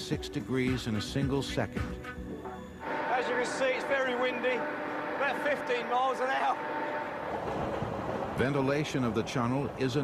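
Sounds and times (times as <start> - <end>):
soft background music: 0.0 - 4.2
man talking: 3.1 - 6.6, 8.4 - 10.0.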